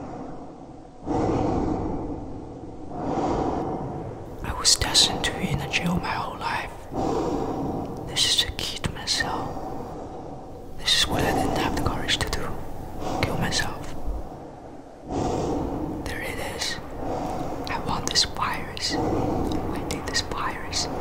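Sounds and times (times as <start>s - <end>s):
person whispering: 4.4s - 6.9s, 7.8s - 9.8s, 10.7s - 14.1s, 16.0s - 21.0s.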